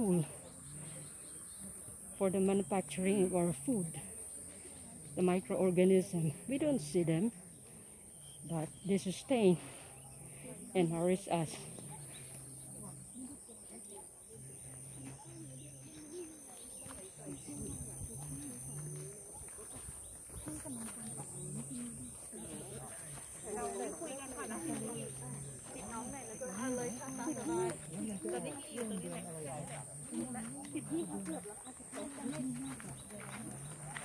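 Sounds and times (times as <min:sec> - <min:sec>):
people talking indistinctly: 0:00.0 - 0:34.0.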